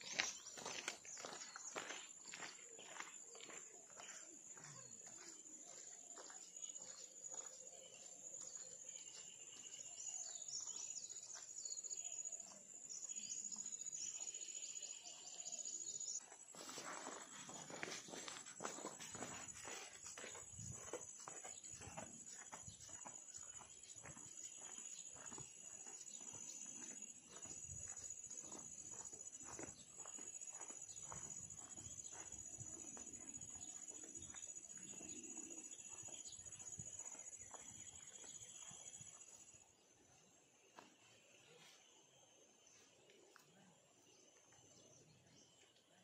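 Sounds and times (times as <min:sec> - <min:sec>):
footsteps crunching on dirt: 0:00.0 - 0:13.3, 0:15.9 - 0:39.6
birds chirping: 0:00.0 - 0:39.7
insects droning: 0:00.0 - 0:46.0.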